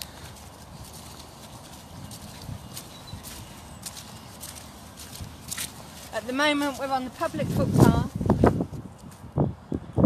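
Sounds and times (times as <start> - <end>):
footsteps on muddy track: 0.0 - 9.4.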